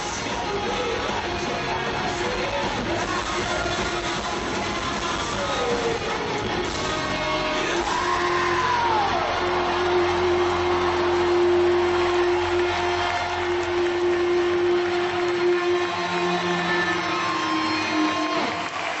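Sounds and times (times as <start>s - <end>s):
sustained amplified band tone: 0.2s - 18.6s.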